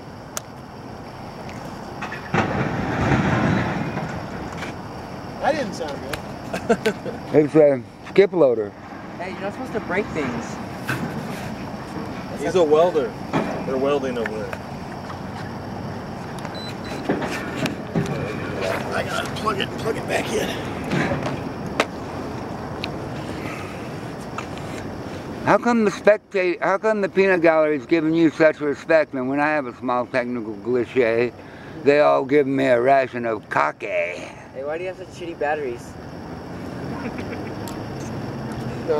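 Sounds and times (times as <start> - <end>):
steady background noise: 0.0 - 38.9
heavy vehicle engine rumbling: 0.8 - 8.0, 8.7 - 25.6
faint high beeps: 16.5 - 17.0.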